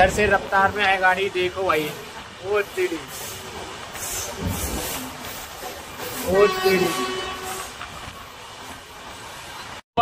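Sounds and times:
moving train rumble: 0.0s - 9.8s
train passing close by: 0.0s - 9.8s.

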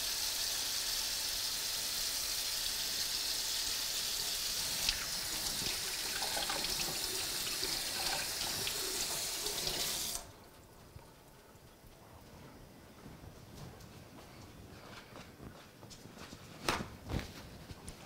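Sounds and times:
tap water running into sink: 4.3s - 10.3s.

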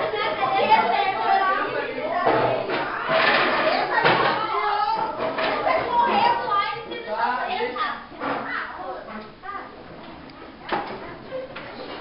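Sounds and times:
young people talking over each other: 0.0s - 9.8s.

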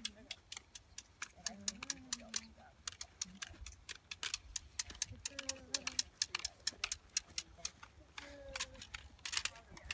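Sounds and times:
footsteps through dry grass: 2.4s - 9.9s.

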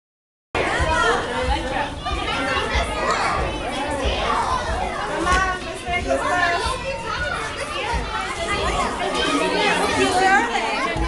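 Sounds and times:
young children talking and calling: 0.6s - 11.0s.

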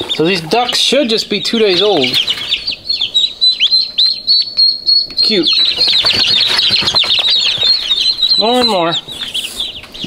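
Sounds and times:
ducklings peeping: 0.0s - 10.0s.

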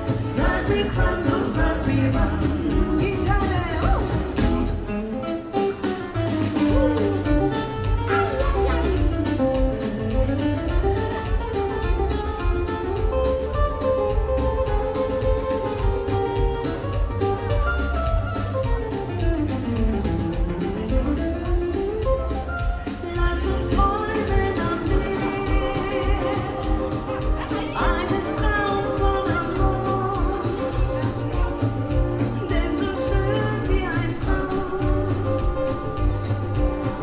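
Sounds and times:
drums keeping a steady beat: 0.0s - 37.0s
lead guitar: 0.0s - 37.0s
upright double bass: 0.0s - 37.0s.

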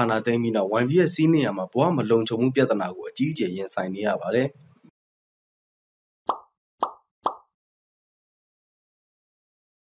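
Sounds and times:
pop sound effects: 6.3s - 7.5s.

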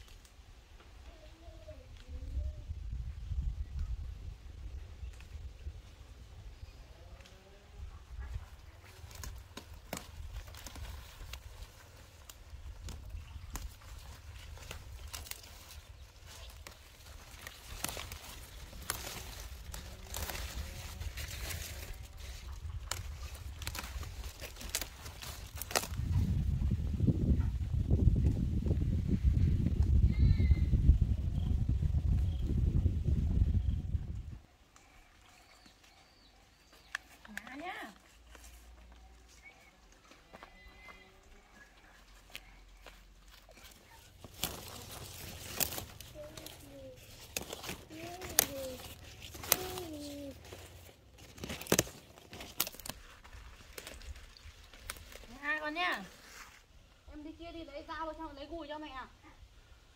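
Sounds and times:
leafy stems rustling and snapping: 0.0s - 1.2s, 8.2s - 26.8s, 34.7s - 56.7s.

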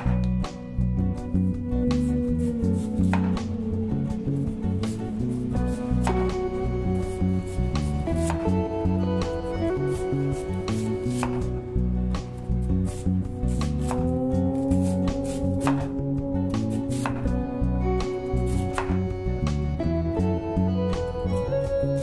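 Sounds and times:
background music: 0.0s - 22.0s
knife cutting sweet potato: 1.9s - 19.6s.

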